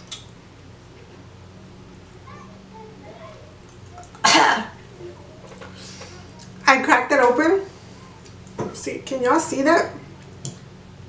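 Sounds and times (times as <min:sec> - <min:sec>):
woman coughing: 0:04.2 - 0:04.8.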